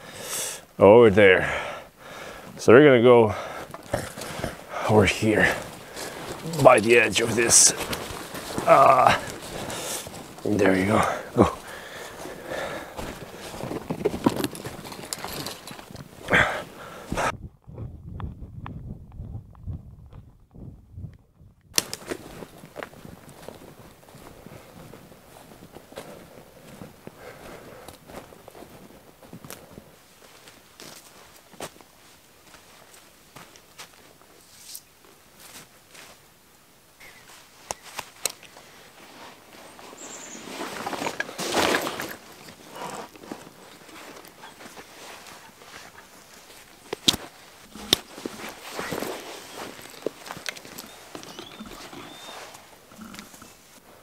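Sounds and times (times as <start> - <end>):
rustling: 3.6 - 17.3, 37.0 - 54.0
footsteps crunching dry leaves: 5.0 - 17.0, 37.2 - 52.8.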